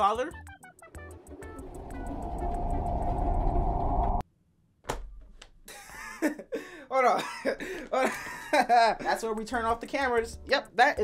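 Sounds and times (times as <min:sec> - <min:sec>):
deep rumbling drone: 0:01.1 - 0:04.2.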